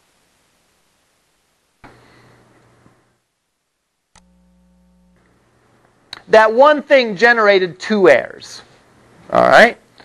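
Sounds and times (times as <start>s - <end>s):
faint click: 4.1s - 4.3s.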